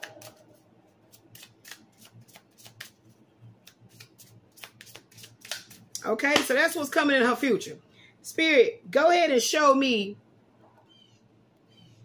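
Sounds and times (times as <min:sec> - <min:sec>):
cards being shuffled: 0:00.0 - 0:06.6.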